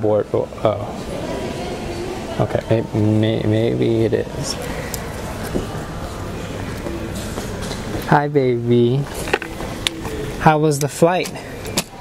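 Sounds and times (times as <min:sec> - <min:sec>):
airport terminal hall rumble: 0:00.0 - 0:12.0.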